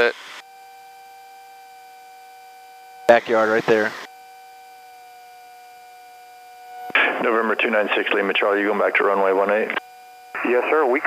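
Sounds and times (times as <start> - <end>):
intercom hiss: 0.0 - 0.4, 3.1 - 4.1, 6.8 - 11.0
faint hum of high tones: 0.0 - 11.0.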